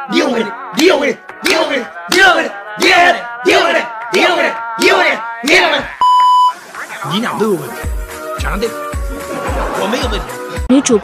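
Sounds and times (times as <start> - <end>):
man's voice: 0.0 - 6.1, 6.7 - 10.6
electronic bleep: 6.0 - 6.6.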